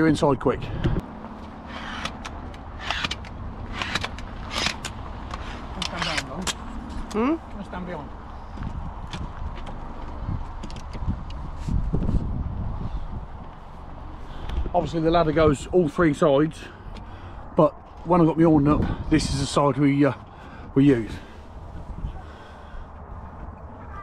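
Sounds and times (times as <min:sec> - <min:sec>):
low wind rumble: 0:00.0 - 0:24.0.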